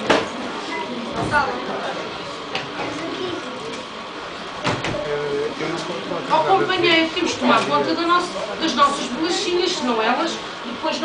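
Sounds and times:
clatter of crowded room: 0:00.0 - 0:11.0
murmur of voices: 0:00.0 - 0:11.0.

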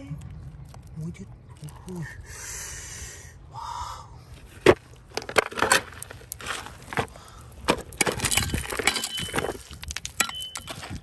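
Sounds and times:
rocks clattering together: 0:04.6 - 0:11.0.

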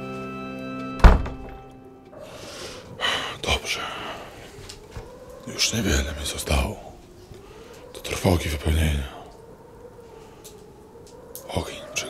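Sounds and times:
music: 0:00.0 - 0:02.1
heavy deep thud: 0:01.0 - 0:01.7.

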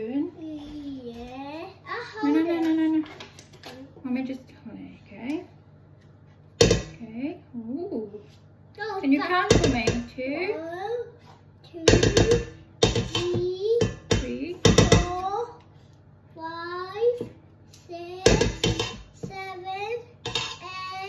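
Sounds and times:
spoon knocking metal bowl: 0:09.4 - 0:10.2, 0:11.8 - 0:15.2, 0:18.2 - 0:19.1, 0:20.2 - 0:20.6.

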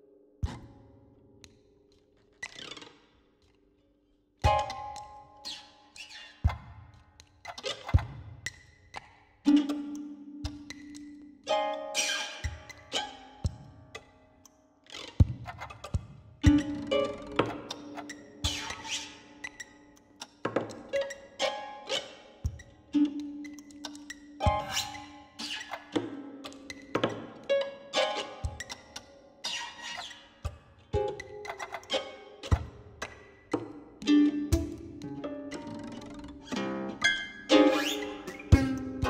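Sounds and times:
electroacoustic sampled music: 0:14.9 - 0:39.0.

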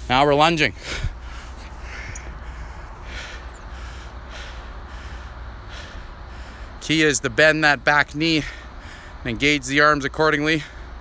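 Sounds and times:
steady low rumble: 0:00.0 - 0:11.0
person breathing hard: 0:00.7 - 0:06.8, 0:08.4 - 0:09.2.

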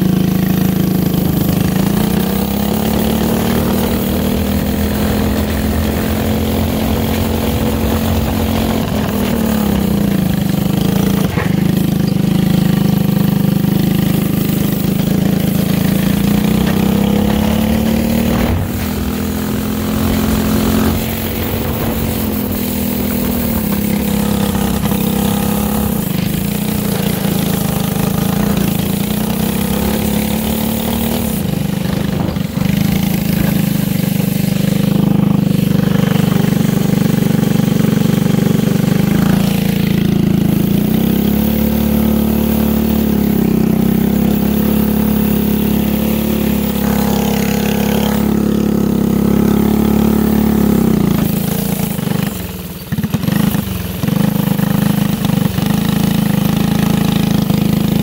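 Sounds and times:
go-kart engine running: 0:00.0 - 0:58.0.

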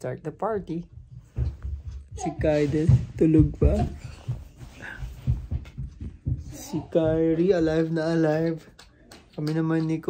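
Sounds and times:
soft low thumps: 0:00.4 - 0:08.2.

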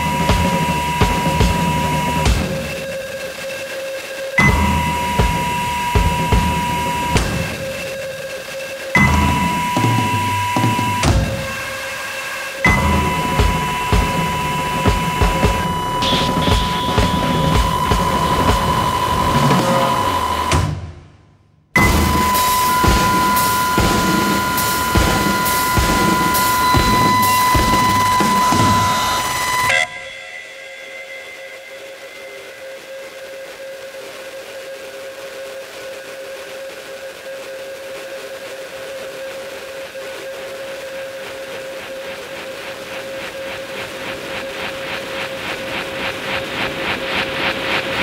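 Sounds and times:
high whistle-like tones: 0:00.0 - 0:20.6, 0:21.8 - 0:34.8
rapid electronic pulsing: 0:00.0 - 0:20.8, 0:21.8 - 0:29.9, 0:40.7 - 0:48.0
sustained drone: 0:00.0 - 0:20.8, 0:21.8 - 0:48.0.

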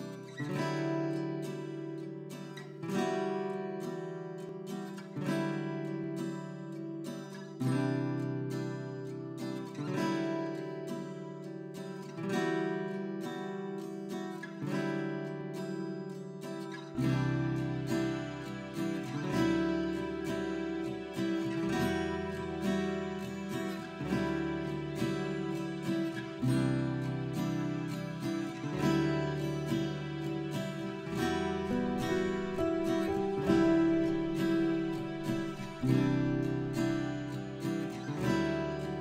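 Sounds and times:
plucked guitar chords: 0:00.0 - 0:39.0.

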